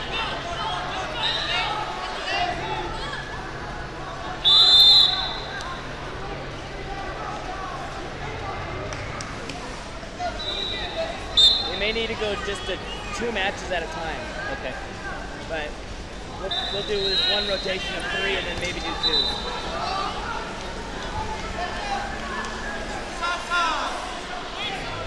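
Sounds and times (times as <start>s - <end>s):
referee's whistle blasts: 4.4s - 5.6s, 10.4s - 11.8s, 16.5s - 17.9s, 18.9s - 19.5s.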